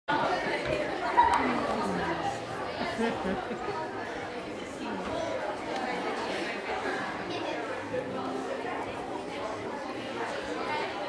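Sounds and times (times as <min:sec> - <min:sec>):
children chattering: 0:00.1 - 0:11.0.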